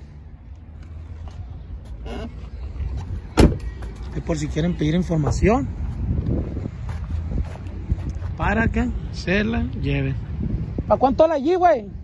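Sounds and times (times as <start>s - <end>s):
car door slamming: 3.3s - 3.8s.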